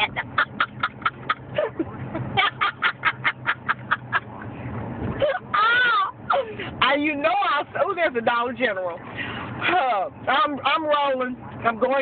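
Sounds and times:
woman laughing hard: 0.0s - 4.3s
low car cabin hum: 0.0s - 12.0s.

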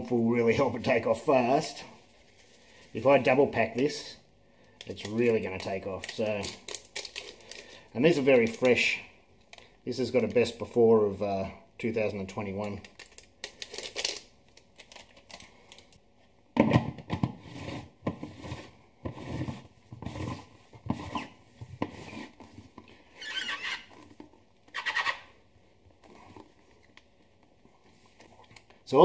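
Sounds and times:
foil sachet crinkling: 4.9s - 7.9s, 12.6s - 16.0s.

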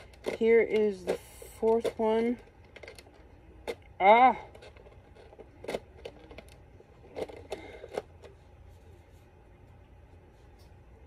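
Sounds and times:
plastic packaging clicks and crackles: 0.0s - 3.9s, 4.5s - 8.3s.

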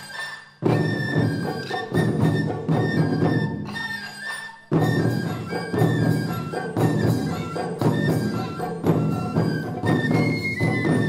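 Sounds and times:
bamboo flute high note: 0.0s - 11.0s
taiko drums: 0.0s - 11.0s.

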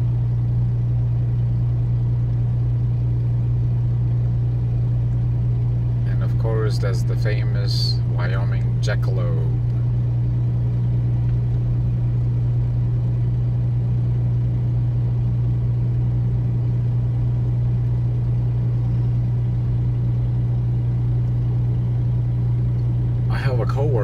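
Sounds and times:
engine and tyre drone in cabin: 0.0s - 24.0s.

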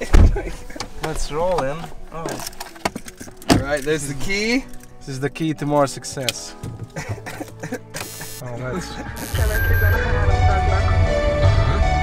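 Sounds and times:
music with heavy bass beat: 9.1s - 12.0s.

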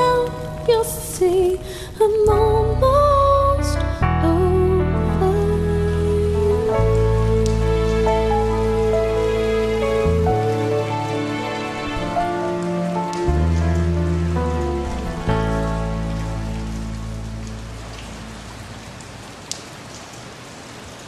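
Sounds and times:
steady rain: 0.0s - 21.0s
song closing chords: 2.2s - 18.9s.

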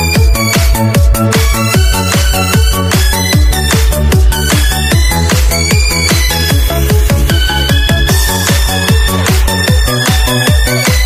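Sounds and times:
fast kick drum: 0.0s - 11.0s.

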